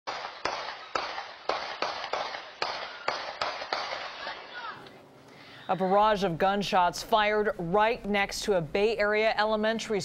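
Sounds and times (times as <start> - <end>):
gunshots echoing: 0.1 - 4.8.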